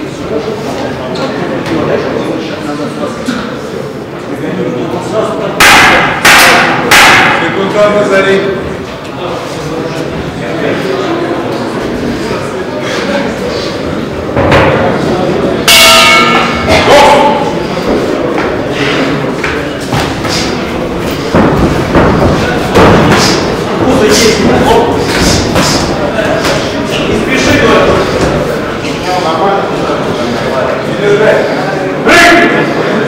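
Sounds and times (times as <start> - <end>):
people shouting: 5.6 - 7.6, 15.6 - 17.6.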